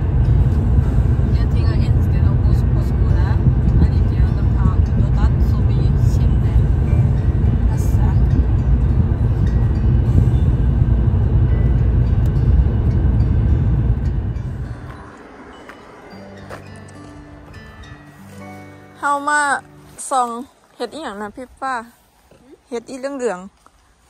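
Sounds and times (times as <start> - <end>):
road and engine rumble in car: 0.0 - 18.2
steady musical tones: 0.0 - 21.9.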